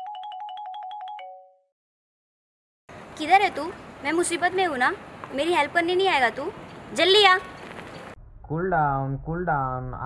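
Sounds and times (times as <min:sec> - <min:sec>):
mobile phone ringtone trill: 0:00.0 - 0:01.7.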